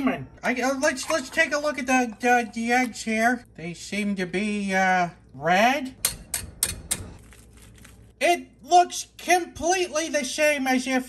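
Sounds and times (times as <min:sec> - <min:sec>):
eggshell crackling as peeled: 0:07.2 - 0:08.2.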